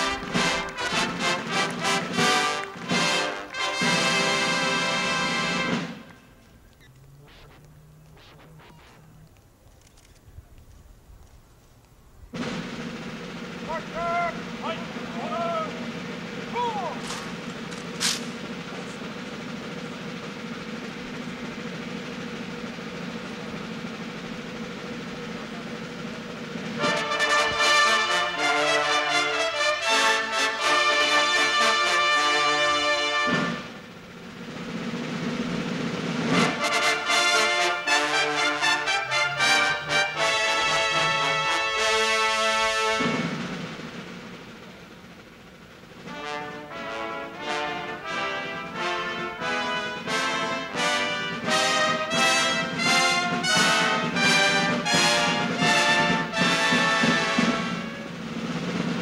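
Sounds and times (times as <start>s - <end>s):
brass band playing chords: 0.0s - 9.4s, 12.3s - 59.0s
steady hiss: 4.5s - 59.0s
low hum: 4.7s - 28.5s.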